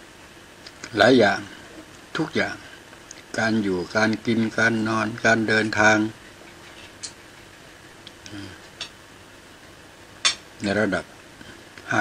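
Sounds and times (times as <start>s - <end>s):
man murmuring: 8.2s - 8.7s.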